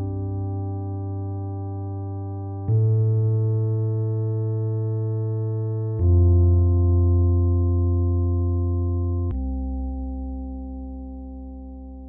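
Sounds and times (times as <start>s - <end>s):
sustained synthesizer chord: 0.0s - 12.0s.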